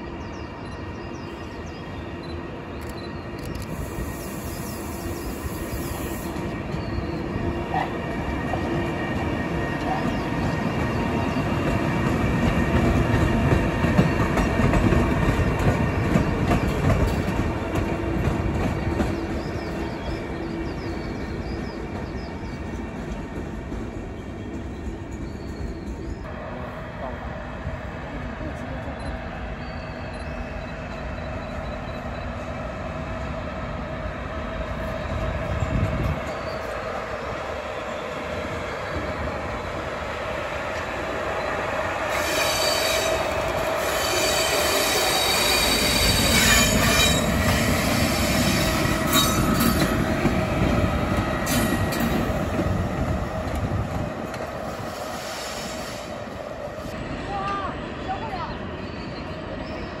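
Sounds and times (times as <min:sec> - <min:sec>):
train wheels squealing: 0:00.0 - 0:08.5, 0:18.8 - 0:23.2, 0:24.1 - 0:26.3, 0:28.8 - 0:32.6, 0:34.7 - 0:39.2, 0:41.3 - 0:53.0, 0:54.6 - 0:56.2, 0:58.4 - 1:00.0
locomotive rumbling: 0:00.0 - 1:00.0.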